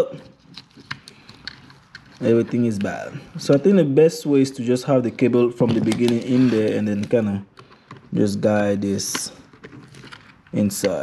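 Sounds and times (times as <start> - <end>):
plastic parts clicking: 0.2 - 3.7, 5.6 - 8.2, 8.9 - 11.0.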